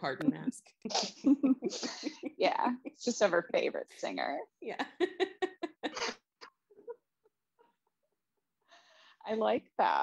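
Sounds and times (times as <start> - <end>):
laughter: 1.2 - 3.0, 4.8 - 8.4.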